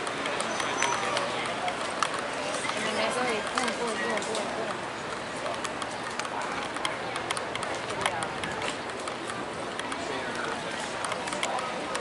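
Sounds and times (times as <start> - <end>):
footsteps on stone paving: 0.0 - 12.0
people's voices outdoors: 0.0 - 12.0.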